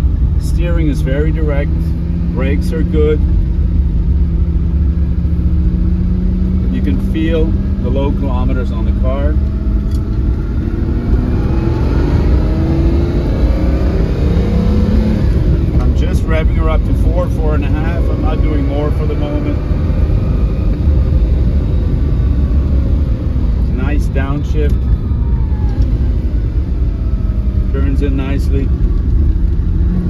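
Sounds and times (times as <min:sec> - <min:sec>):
car engine rumbling while driving: 0:00.0 - 0:30.0.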